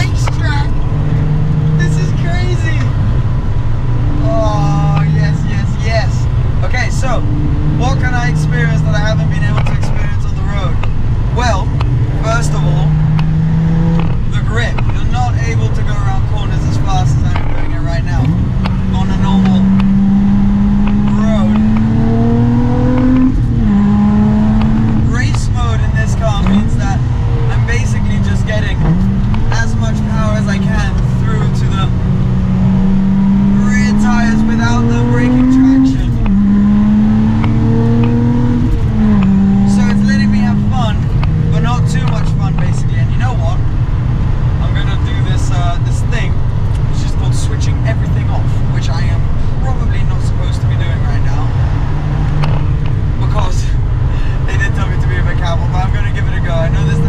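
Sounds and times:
car engine accelerating hard: 0.0 - 57.0.

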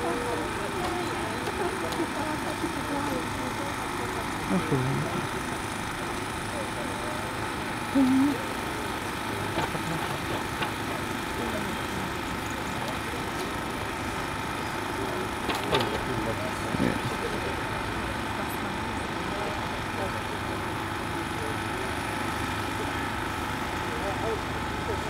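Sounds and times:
petrol generator humming: 0.0 - 25.0.

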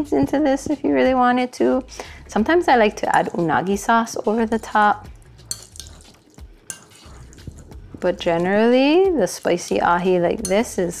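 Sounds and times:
soft wet stirring: 2.8 - 11.0
spoon clicking against glass: 5.4 - 7.4.

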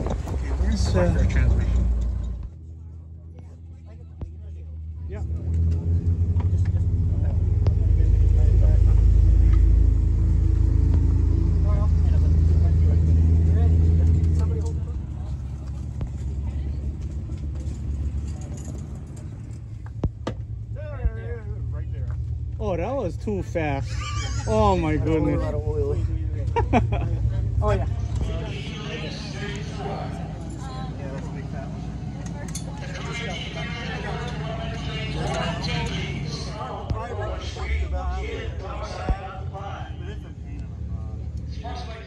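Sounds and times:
vehicle engine running: 0.0 - 42.0.

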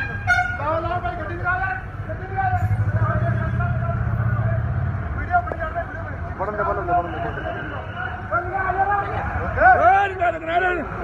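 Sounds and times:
vehicle engine rumbling: 0.0 - 11.0
voices: 0.0 - 11.0.

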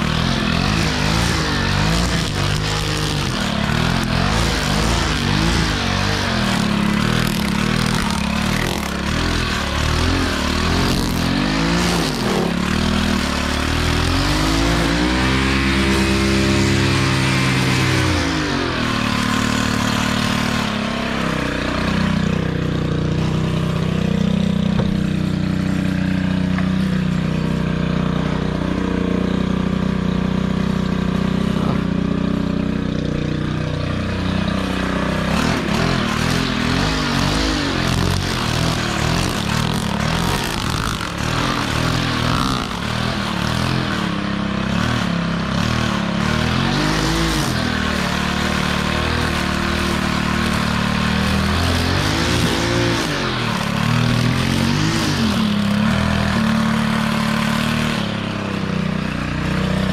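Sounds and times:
string trimmer cutting grass: 0.0 - 59.9.

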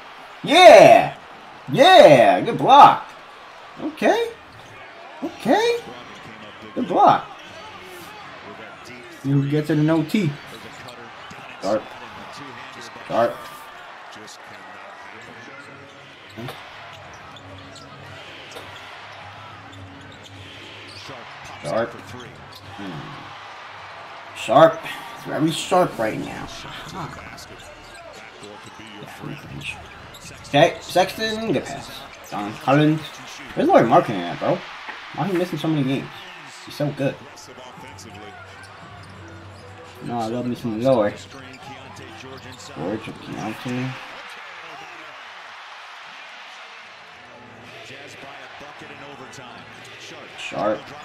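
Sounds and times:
faint commentary: 0.0 - 23.4, 24.2 - 45.2, 47.2 - 51.0
crowd din: 0.0 - 51.0.

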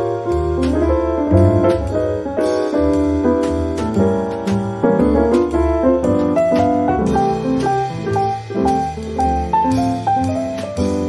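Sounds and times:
low bass line: 0.0 - 11.0
smooth jazz piano: 0.0 - 11.0.

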